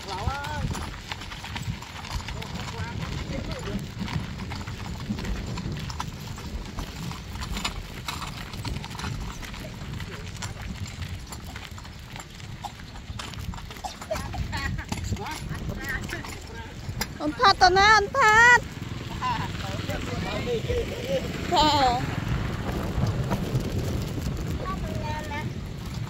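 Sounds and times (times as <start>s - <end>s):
hand truck rolling on dirt: 0.0s - 26.0s
footsteps on dirt: 19.5s - 24.6s.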